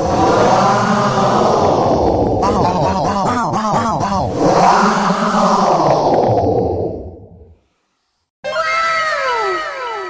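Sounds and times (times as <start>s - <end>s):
voice-like swooping tone effect: 0.0s - 6.9s.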